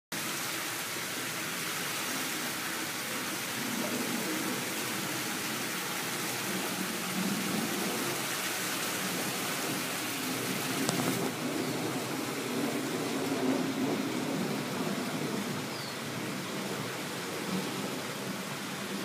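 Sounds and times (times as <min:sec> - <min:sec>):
running water rushing: 0:00.1 - 0:19.0.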